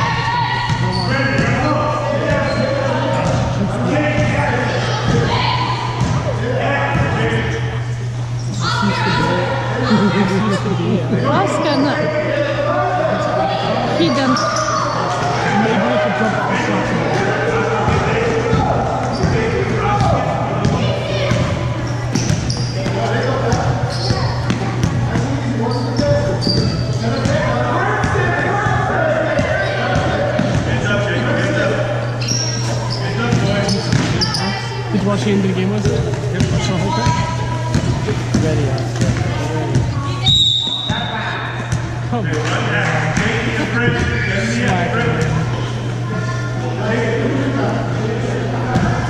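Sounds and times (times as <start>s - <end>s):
spectators talking: 0.0s - 49.0s
steady low hum: 0.0s - 49.0s
shoe squeaks: 0.7s - 1.3s, 2.3s - 3.0s, 14.1s - 15.1s, 21.8s - 24.5s, 25.6s - 27.4s, 32.0s - 34.7s, 44.0s - 44.6s.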